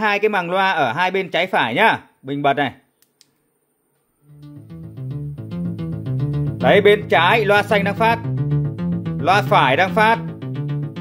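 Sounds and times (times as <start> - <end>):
faint clicks: 3.0 - 4.0
music from speakers: 4.4 - 11.0.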